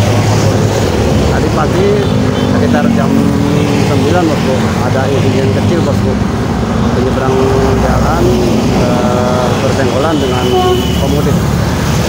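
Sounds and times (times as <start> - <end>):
road traffic rumble: 0.0 - 12.0
people talking: 1.3 - 6.2, 7.0 - 11.5.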